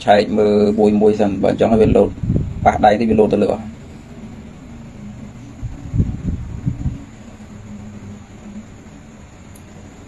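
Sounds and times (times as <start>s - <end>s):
low room hum with hiss: 0.0s - 10.0s
soft low thumps: 1.8s - 2.8s.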